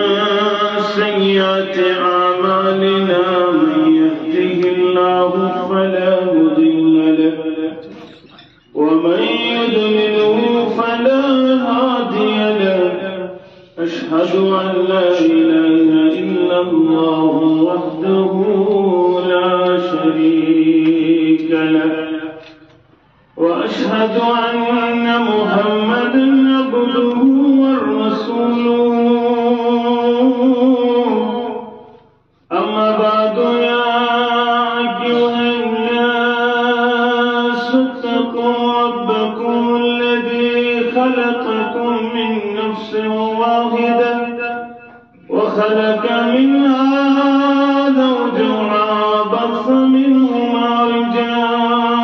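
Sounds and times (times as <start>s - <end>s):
man chanting through microphone: 0.0s - 52.0s.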